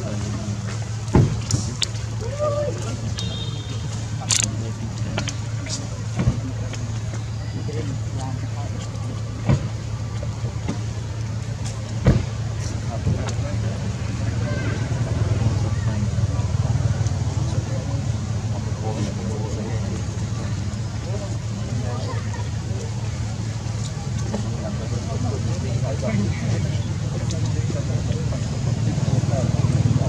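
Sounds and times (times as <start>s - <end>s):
faint indistinct voices: 0.0s - 30.0s
low engine hum: 0.0s - 30.0s.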